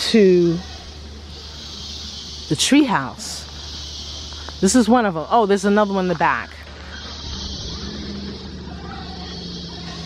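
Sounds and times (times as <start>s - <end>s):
insect buzz: 0.0s - 10.0s.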